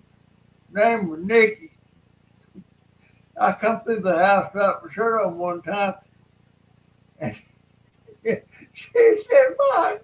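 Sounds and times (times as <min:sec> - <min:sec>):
man laughing: 0:07.2 - 0:07.5, 0:08.1 - 0:10.0.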